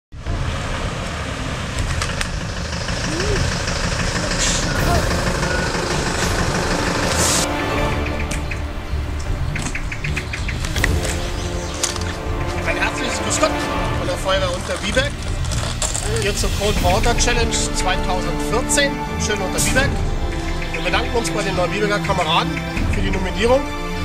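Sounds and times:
diesel truck engine rumbling: 0.1s - 24.0s.

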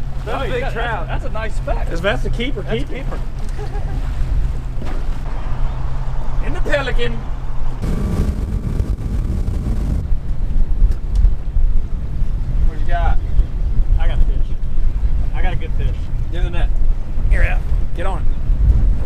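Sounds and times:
wind buffeting microphone: 7.3s - 19.0s.

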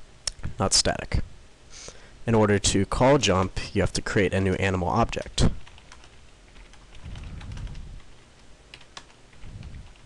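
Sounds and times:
low rumble: 6.9s - 8.2s, 9.3s - 10.0s.

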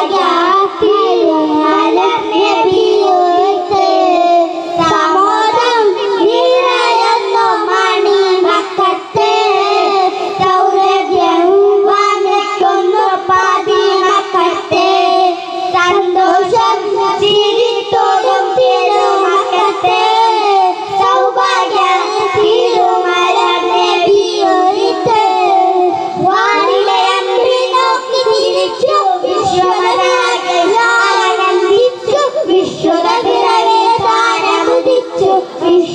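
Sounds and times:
boys singing into microphones: 0.0s - 35.9s.

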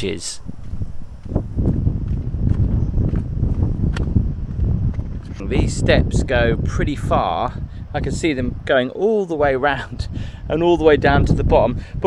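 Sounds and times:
wind buffeting microphone: 0.0s - 12.0s
footsteps on stone steps: 0.5s - 5.4s.

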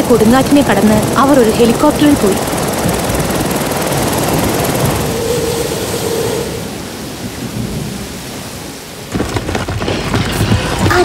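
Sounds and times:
heavy rain: 4.1s - 11.0s
thunder: 9.0s - 11.0s.

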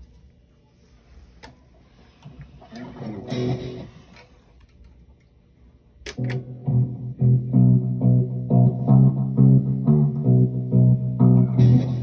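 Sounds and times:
electric guitar notes and chord: 2.8s - 4.0s, 6.2s - 12.0s.

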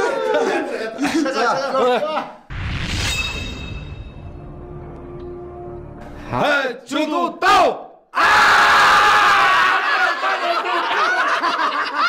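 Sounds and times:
men laughing loudly: 0.0s - 2.5s, 9.1s - 12.0s.

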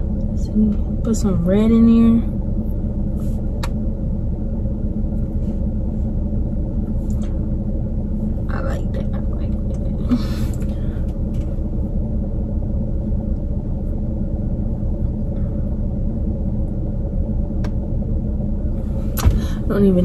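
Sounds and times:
idling car rumble: 0.0s - 20.0s.

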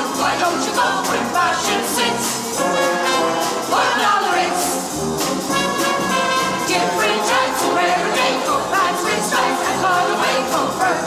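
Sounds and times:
instrumental accompaniment: 0.0s - 11.0s
mixed choir singing in harmony: 0.0s - 11.0s.

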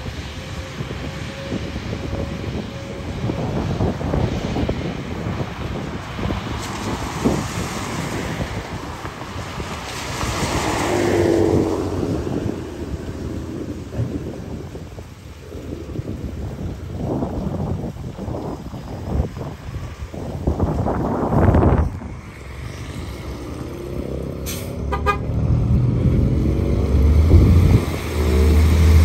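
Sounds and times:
car tyres hissing on wet road: 0.0s - 29.0s
wind rumbling on microphone: 0.0s - 29.0s.

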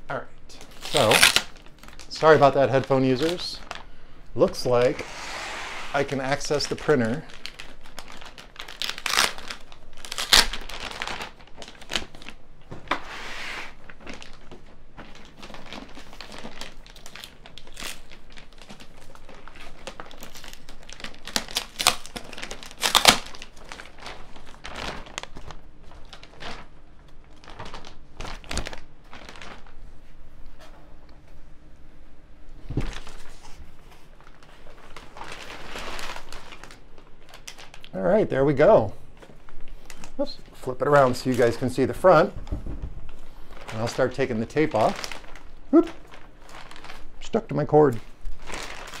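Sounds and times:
plastic bag crinkling: 0.6s - 5.2s, 5.9s - 12.4s, 13.7s - 29.8s, 32.8s - 49.0s.

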